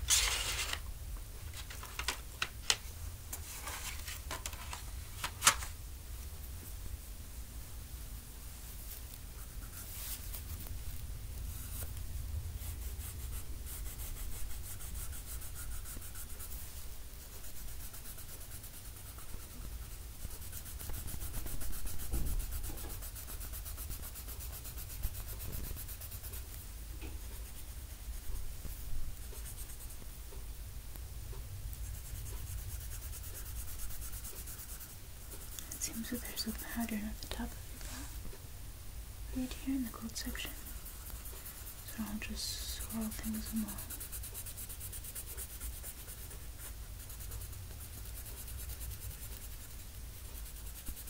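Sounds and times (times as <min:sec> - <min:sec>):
coloring medium scratching paper: 0:00.0 - 0:00.8, 0:03.4 - 0:04.8, 0:08.9 - 0:12.0, 0:12.6 - 0:30.1, 0:31.7 - 0:38.1, 0:39.3 - 0:51.0
steady low hum: 0:00.0 - 0:51.0.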